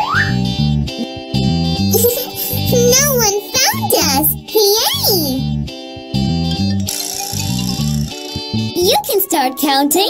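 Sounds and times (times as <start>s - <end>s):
light children's music: 0.0s - 10.0s
plucked guitar: 0.1s - 8.8s
person's voice: 1.9s - 5.4s, 8.8s - 10.0s.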